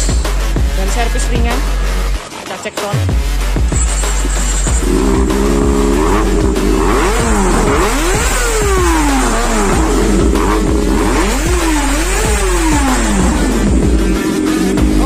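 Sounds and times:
motorcycle engine idling and revving: 0.0s - 15.0s.

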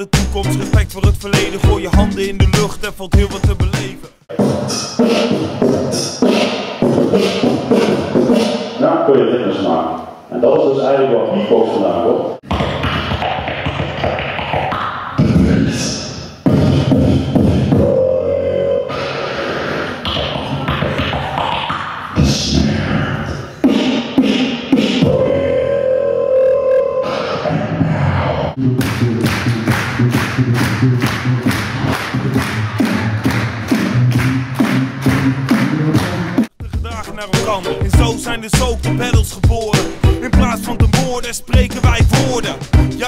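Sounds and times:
hummed bass line: 0.0s - 4.0s, 37.8s - 43.0s
beatboxing into microphone: 0.0s - 8.9s, 12.5s - 43.0s.

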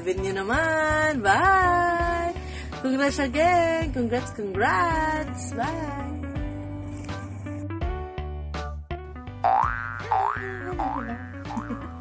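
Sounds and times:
background music: 0.0s - 12.0s
cartoon boing rising glides: 9.5s - 12.0s.

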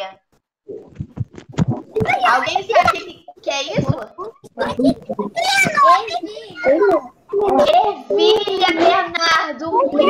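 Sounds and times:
children talking at once: 2.0s - 10.0s.

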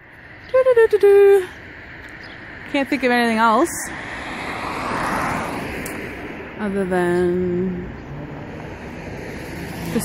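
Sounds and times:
car passing by: 2.5s - 10.0s.

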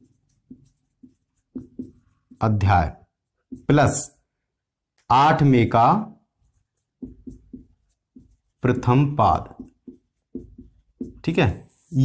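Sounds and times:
marker writing on whiteboard: 0.0s - 12.0s.

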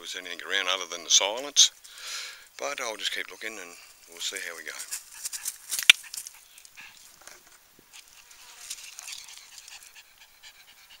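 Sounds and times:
small dog panting: 4.8s - 7.2s, 7.9s - 11.0s.

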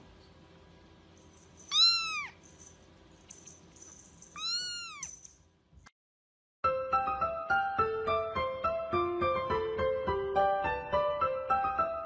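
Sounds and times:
kitten mewing: 1.7s - 2.4s, 4.4s - 5.1s.

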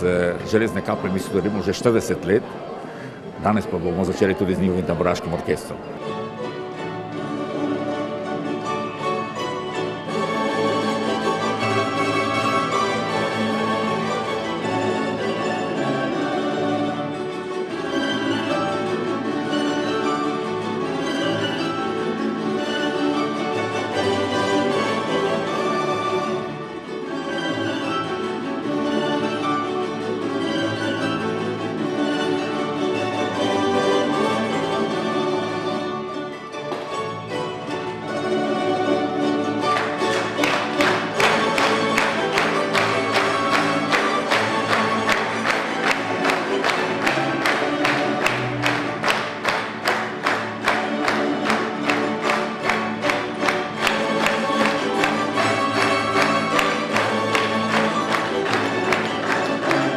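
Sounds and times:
plucked string ensemble playing: 0.0s - 59.9s.

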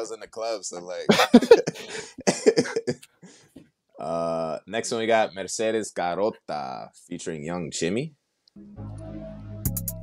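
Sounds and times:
men laughing: 1.1s - 3.0s.

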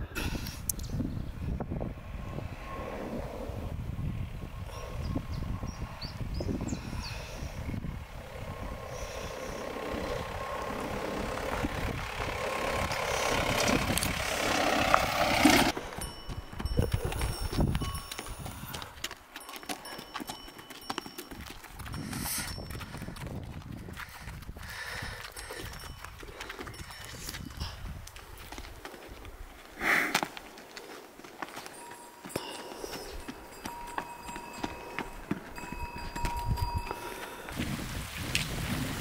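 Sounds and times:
car engine driving: 7.2s - 15.9s
hooves clopping on stony ground: 8.2s - 37.6s
tyres crunching on gravel: 8.9s - 38.9s.

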